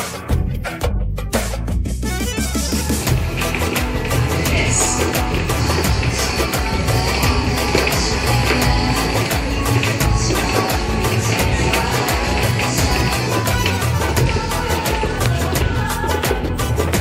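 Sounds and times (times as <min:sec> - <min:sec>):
upbeat music with heavy bass: 0:00.0 - 0:17.0.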